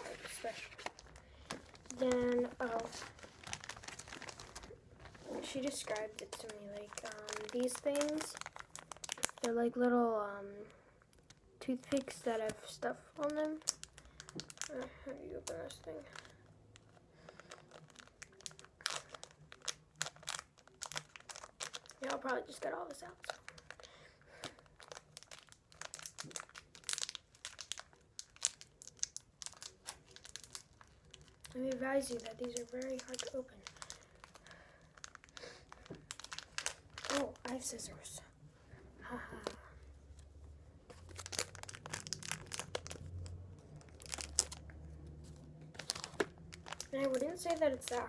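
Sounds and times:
plastic wrapper crinkling: 0.0s - 9.9s, 11.0s - 38.2s, 39.4s - 48.0s.

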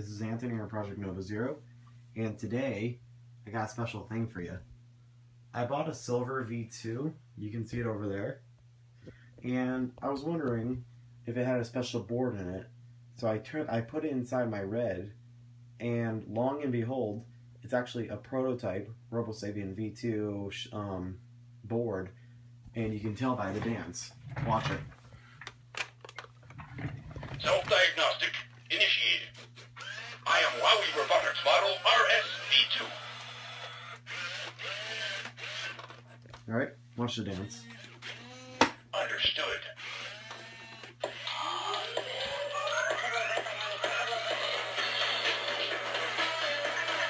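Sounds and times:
toy robot electronic voice: 27.4s - 35.8s, 37.4s - 47.0s.

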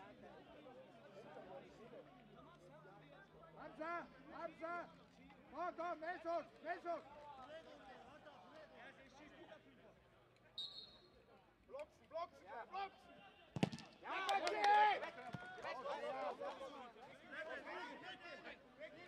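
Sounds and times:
short high whistle: 10.6s - 11.1s
ball being kicked: 13.6s - 14.0s
footballers shouting: 13.6s - 16.7s.

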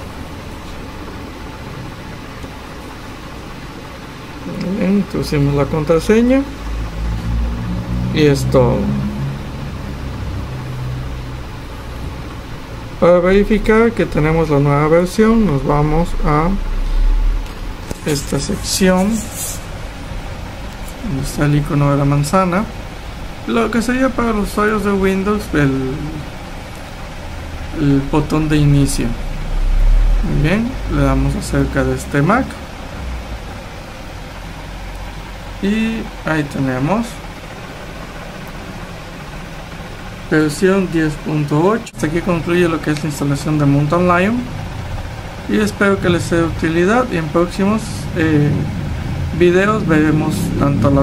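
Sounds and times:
low room hum with hiss: 0.0s - 51.0s.

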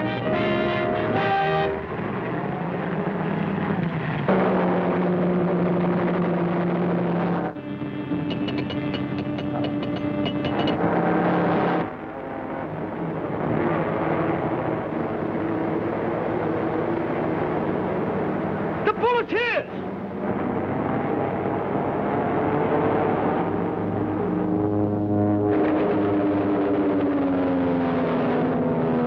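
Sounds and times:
orchestral music: 0.0s - 2.0s, 7.6s - 10.9s
cartoon car engine running: 4.3s - 11.9s
fast run of clicks: 8.3s - 10.8s.

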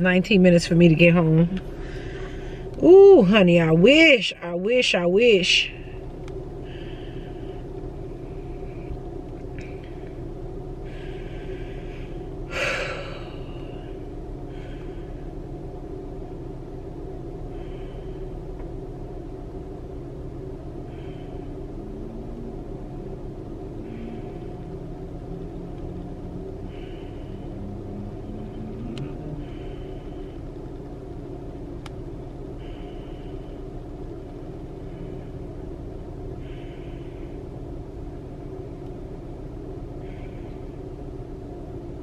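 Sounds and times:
car engine rumble: 0.0s - 42.0s
road noise inside car: 0.0s - 42.0s.

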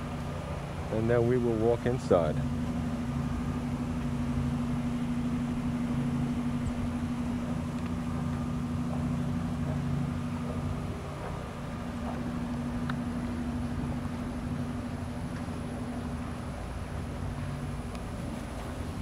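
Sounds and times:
steady mechanical hum: 0.0s - 19.0s.

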